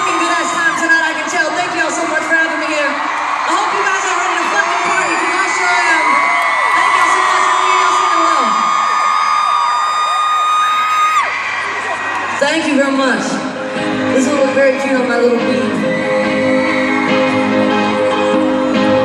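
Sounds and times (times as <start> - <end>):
crowd screaming and cheering: 0.0 - 19.0.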